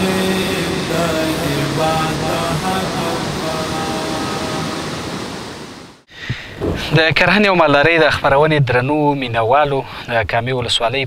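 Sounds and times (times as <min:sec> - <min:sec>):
water rushing in channel: 0:00.0 - 0:07.0.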